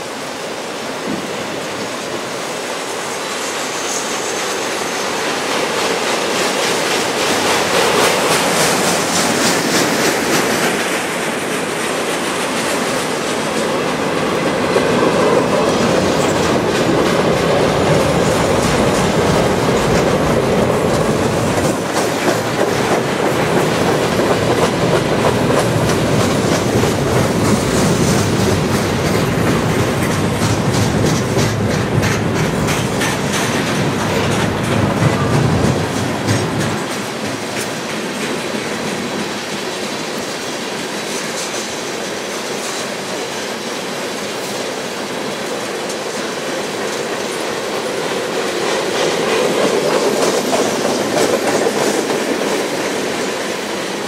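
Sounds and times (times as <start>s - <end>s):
train wheels rumbling on rail: 0.0s - 54.0s
wheels clickety-clack over rail joints: 0.0s - 54.0s.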